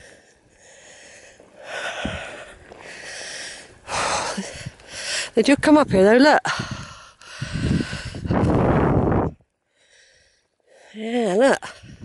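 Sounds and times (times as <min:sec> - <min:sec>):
person breathing hard: 0:06.5 - 0:08.6.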